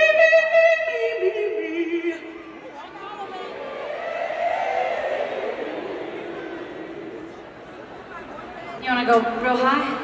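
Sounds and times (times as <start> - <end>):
audience vocalizing together: 2.2 - 8.2.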